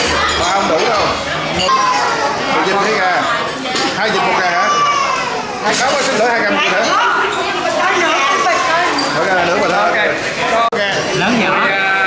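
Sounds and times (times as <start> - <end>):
overlapping conversation: 0.1 - 12.0.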